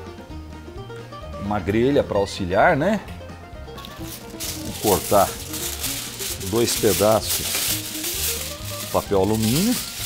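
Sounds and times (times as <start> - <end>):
soft background music: 0.0 - 10.0
aluminium foil crinkling: 3.8 - 10.0.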